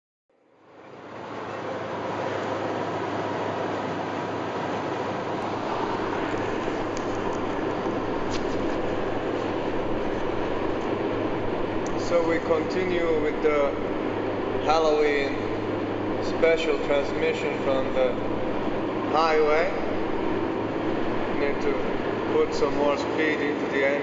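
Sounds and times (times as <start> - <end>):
car road and engine noise: 0.5 - 24.0.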